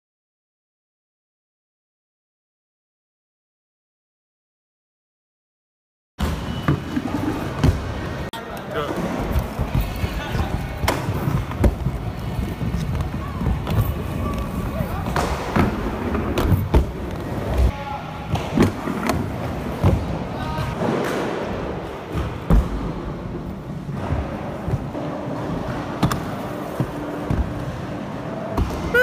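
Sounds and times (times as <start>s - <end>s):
skate wheels rolling on ramps: 6.2s - 8.3s, 8.9s - 17.7s, 18.3s - 28.9s.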